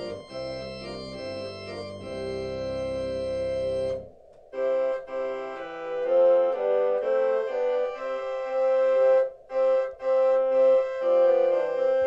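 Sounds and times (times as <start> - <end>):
electronic organ chords: 0.0 - 12.0.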